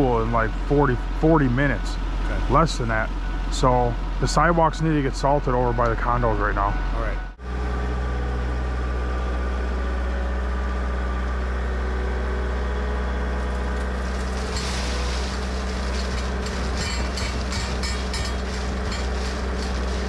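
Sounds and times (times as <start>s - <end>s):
loader engine droning: 0.0s - 20.0s
rock salt pouring into hopper: 13.8s - 20.0s.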